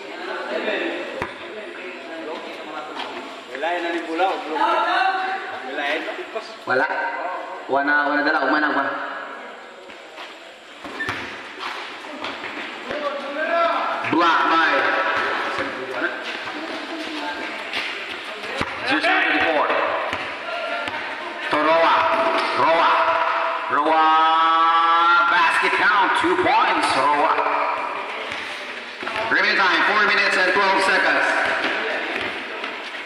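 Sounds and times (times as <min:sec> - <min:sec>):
basketball bouncing on concrete: 0:01.2 - 0:01.4, 0:10.8 - 0:13.1, 0:14.8 - 0:21.2, 0:28.2 - 0:29.3, 0:31.3 - 0:33.0.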